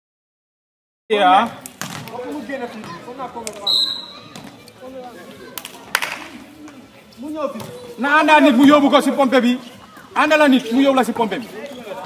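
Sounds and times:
players' voices: 0:01.1 - 0:12.0
ball bouncing on hard court: 0:01.8 - 0:02.2
referee's whistle blast: 0:03.6 - 0:04.3.

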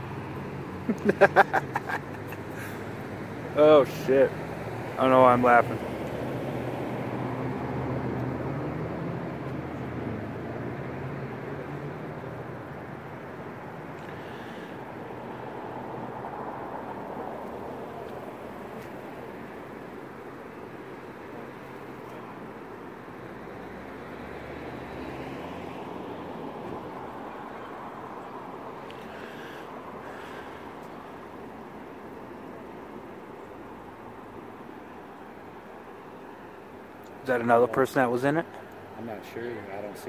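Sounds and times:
low engine hum: 0:00.0 - 0:37.7
traffic noise: 0:00.0 - 0:40.0.

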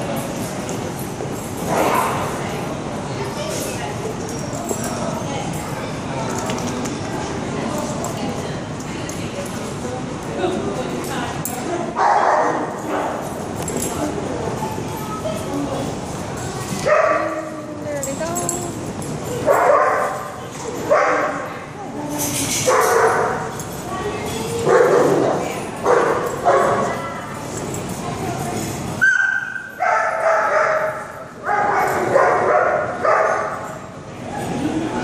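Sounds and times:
dogs barking and yipping: 0:19.3 - 0:21.5, 0:22.6 - 0:23.6, 0:29.0 - 0:33.8.

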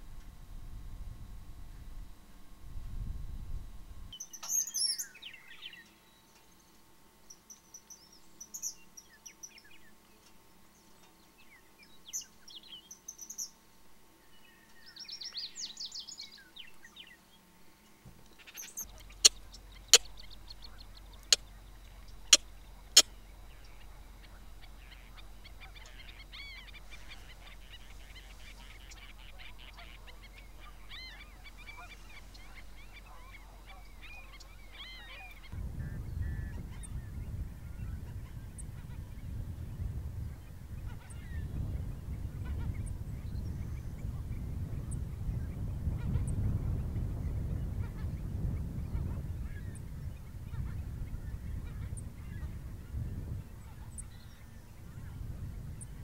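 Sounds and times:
birds calling in chorus: 0:04.1 - 0:06.7, 0:14.3 - 0:56.0
faint bird chirps: 0:04.1 - 0:56.0
low rumble: 0:18.8 - 0:56.0.

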